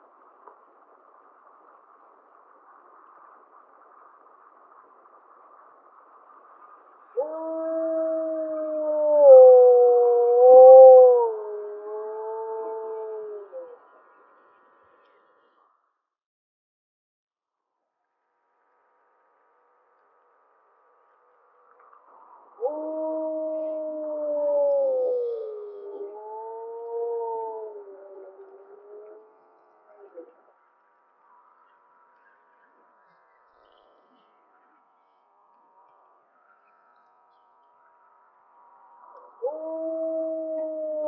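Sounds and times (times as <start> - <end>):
wolf howling: 7.2 - 13.8, 22.6 - 30.3, 39.4 - 41.0.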